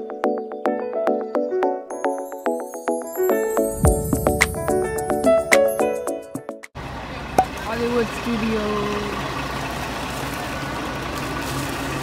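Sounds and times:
bus engine idling: 6.8s - 12.0s.

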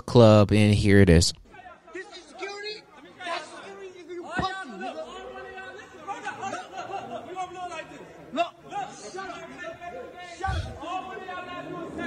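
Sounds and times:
muffled chatter of men's voices: 0.0s - 12.0s.

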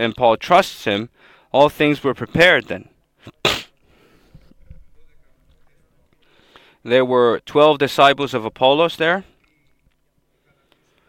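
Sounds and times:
man coughing: 3.3s - 3.8s.

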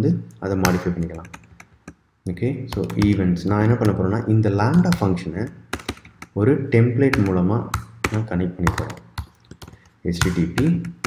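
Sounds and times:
person talking: 0.0s - 1.5s, 2.2s - 5.7s, 6.3s - 9.2s, 10.0s - 11.0s
computer keyboard keystrokes: 0.6s - 2.0s, 2.7s - 4.0s, 5.7s - 6.4s, 7.1s - 11.0s.

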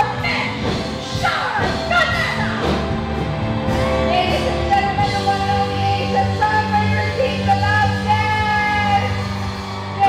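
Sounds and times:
band accompaniment: 0.0s - 10.0s
woman singing live: 4.1s - 9.2s.

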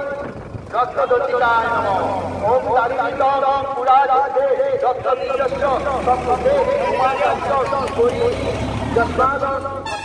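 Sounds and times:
diesel engine idling: 0.0s - 3.8s, 4.9s - 9.9s
people talking at once: 5.2s - 8.6s.

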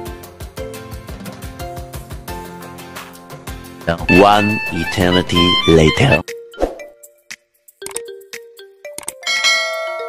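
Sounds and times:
simple melody background music: 0.0s - 10.0s
bright bell chime: 9.3s - 10.0s.

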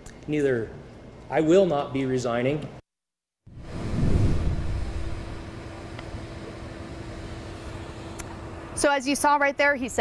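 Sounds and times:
low rumble and hiss: 3.6s - 10.0s.

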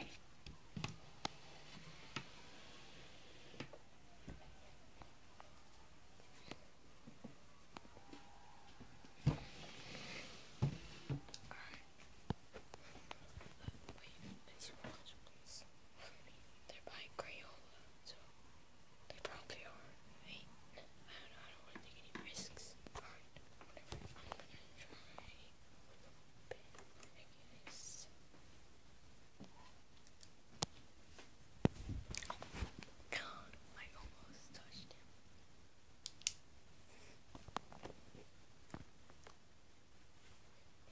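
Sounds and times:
person whispering: 11.4s - 12.0s, 13.1s - 18.3s, 19.1s - 25.6s, 26.5s - 28.2s, 33.1s - 35.1s.

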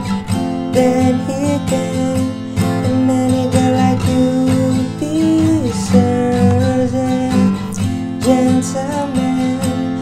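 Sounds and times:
acoustic guitar strumming: 0.0s - 10.0s
man singing: 0.7s - 10.0s.

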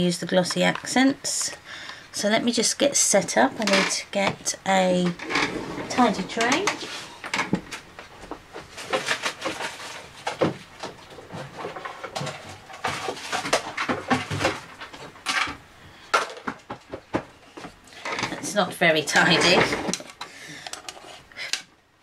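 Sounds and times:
craft supplies clattering: 5.0s - 7.8s.

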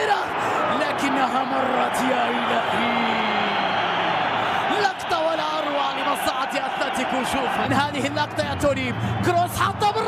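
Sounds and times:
man commentating excitedly: 0.0s - 4.0s, 4.6s - 10.0s
stadium crowd noise: 0.0s - 10.0s.

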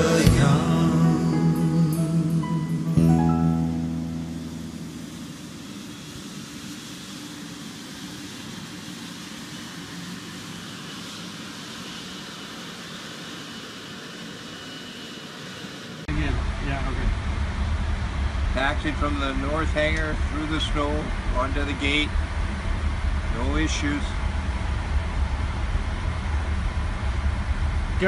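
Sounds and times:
low cockpit hum: 0.0s - 7.0s, 16.1s - 28.0s
faint high whine: 0.0s - 28.0s
jet airliner taxiing hiss: 0.0s - 28.0s
man speaking: 16.1s - 17.1s, 18.6s - 22.1s, 23.4s - 24.2s.

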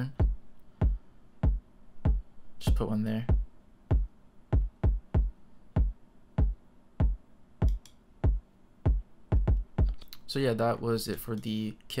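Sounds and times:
electronic kick drum thumps: 0.0s - 10.0s.

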